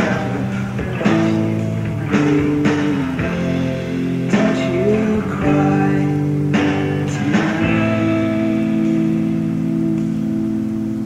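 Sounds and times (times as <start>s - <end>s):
strummed guitar chord ringing: 0.0s - 11.0s.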